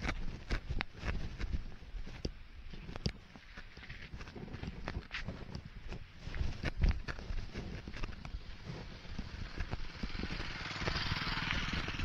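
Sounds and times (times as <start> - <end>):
vehicle engine running: 7.2 - 12.0
motorcycle passing: 7.7 - 12.0.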